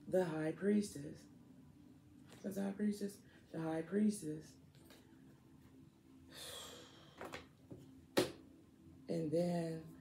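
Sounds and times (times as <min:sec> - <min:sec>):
faint steady hum: 0:00.0 - 0:10.0
woman breathy exhale: 0:06.3 - 0:07.2.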